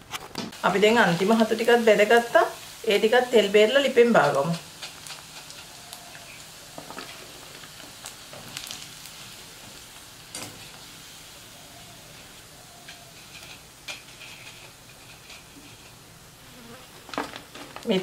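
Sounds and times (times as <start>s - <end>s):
deep-frying sizzle in oil: 0.5s - 18.0s.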